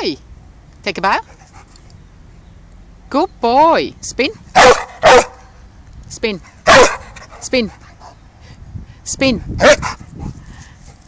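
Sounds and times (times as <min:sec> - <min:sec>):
dog panting: 0:06.4 - 0:08.2, 0:09.4 - 0:11.0.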